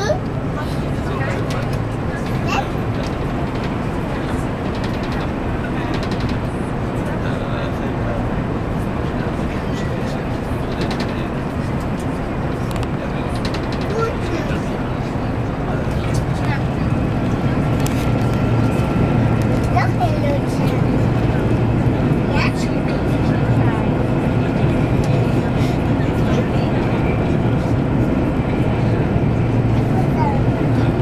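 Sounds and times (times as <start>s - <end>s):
train rumbling at speed: 0.0s - 31.0s.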